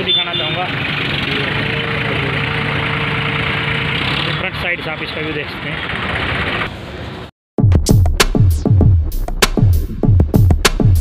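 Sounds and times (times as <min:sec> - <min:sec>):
people talking: 0:04.3 - 0:05.9.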